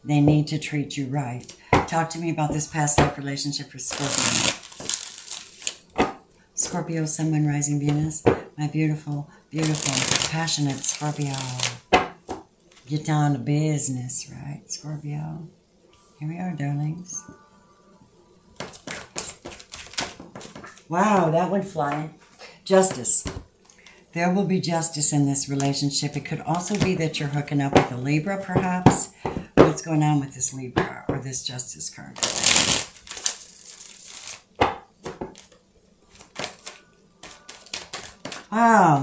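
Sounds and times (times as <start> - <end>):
cards being shuffled: 3.8 - 6.2, 9.6 - 12.9, 18.6 - 20.9, 32.2 - 38.6
card snaps and taps: 36.2 - 38.5.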